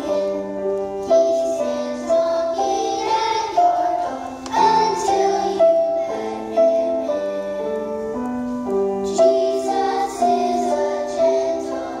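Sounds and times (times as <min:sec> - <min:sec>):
children's choir singing: 0:00.0 - 0:08.4, 0:09.0 - 0:12.0
instrumental accompaniment: 0:00.0 - 0:12.0.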